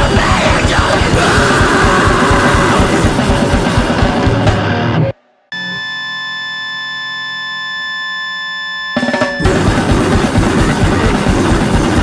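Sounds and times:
fast distorted band music: 0.0s - 5.8s, 9.0s - 12.0s
high-pitched electronic tone: 5.0s - 11.1s.

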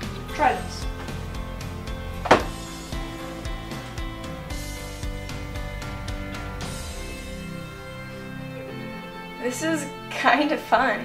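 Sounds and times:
soft background music: 0.0s - 11.0s
sharp thump: 2.2s - 2.6s.

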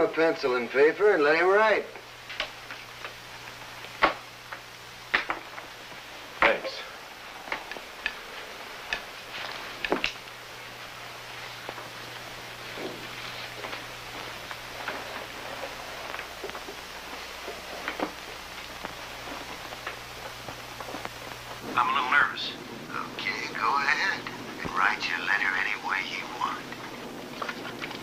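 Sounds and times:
film soundtrack hiss and hum: 0.0s - 28.0s.

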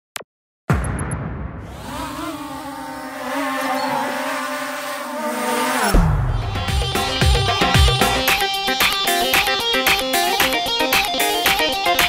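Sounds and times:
drone propellers humming: 1.6s - 9.8s.

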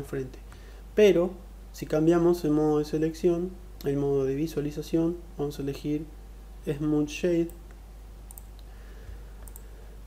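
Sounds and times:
low steady hum: 0.0s - 10.0s
computer mouse clicks: 7.5s - 8.7s, 9.4s - 9.7s.

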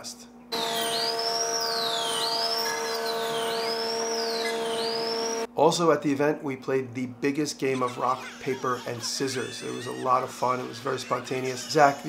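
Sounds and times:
electronic siren sweeping up and down: 0.5s - 5.5s.

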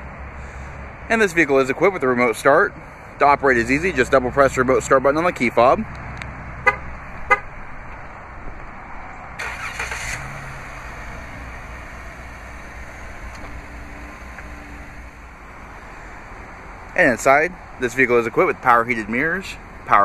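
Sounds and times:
car horn chirp: 6.6s - 7.5s
car engine cranking and idling: 9.3s - 20.0s.

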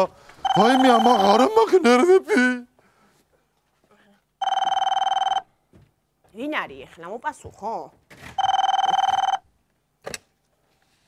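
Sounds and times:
telephone ringing: 0.4s - 1.5s, 4.4s - 5.5s, 8.4s - 9.5s.

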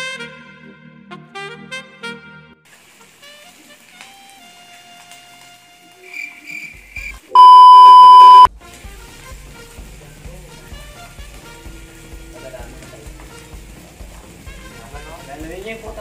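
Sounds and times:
high-pitched electronic bleep: 7.4s - 8.5s
background music with low beat: 8.6s - 16.0s.

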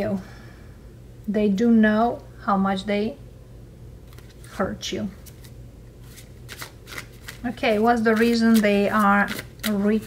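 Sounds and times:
cards being shuffled: 4.0s - 10.0s.

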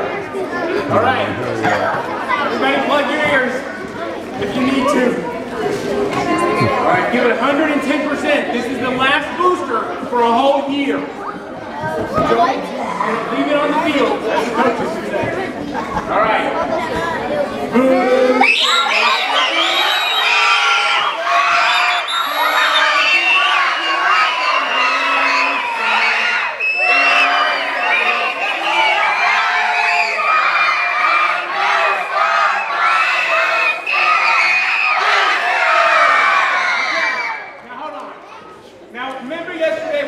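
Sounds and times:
children singing loudly: 17.6s - 37.5s.

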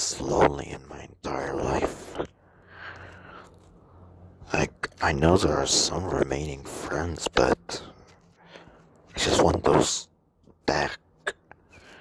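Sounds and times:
man coughing: 10.8s - 11.6s.

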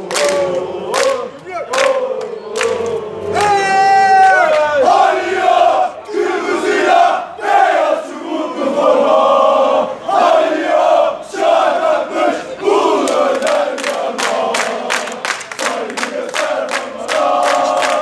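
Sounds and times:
hand-clapping: 0.0s - 3.6s, 13.0s - 18.0s
crowd chanting: 0.0s - 18.0s.

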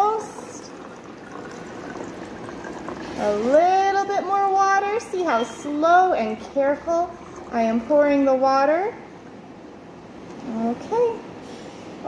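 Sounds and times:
water pouring into plastic bottle: 0.0s - 4.2s.

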